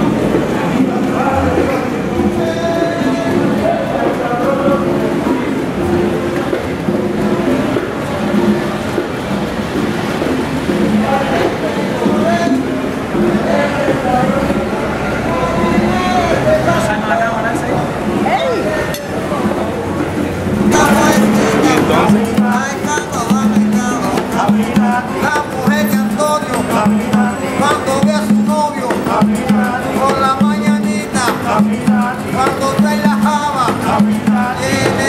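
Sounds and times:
acoustic guitars playing: 0.0 - 35.0
people talking: 0.0 - 35.0
street noise: 0.0 - 35.0
voices: 0.0 - 35.0.

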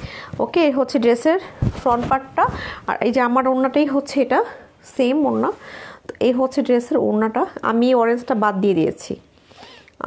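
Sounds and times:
woman speaking: 0.4 - 9.3
cloth rustling: 1.5 - 3.0.

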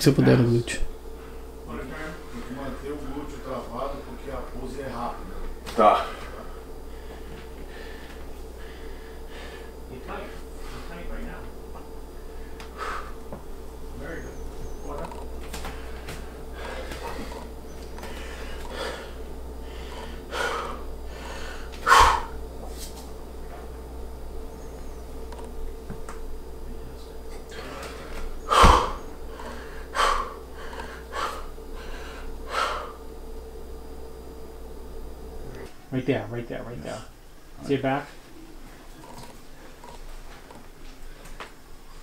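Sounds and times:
sharp forceful exhalations: 18.0 - 22.4.

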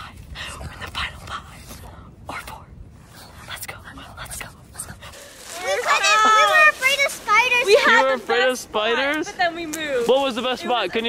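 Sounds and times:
hushed whispering: 0.0 - 5.2
wind rumble on microphone: 0.0 - 5.6.

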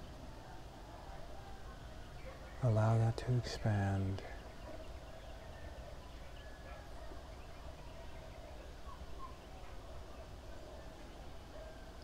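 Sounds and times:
distant bird calls: 0.0 - 12.0.

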